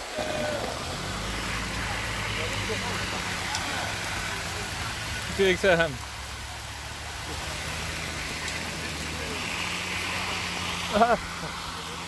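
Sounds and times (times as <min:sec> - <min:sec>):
car engine idling: 0:00.0 - 0:12.0
hail and rain falling on road: 0:00.0 - 0:12.0.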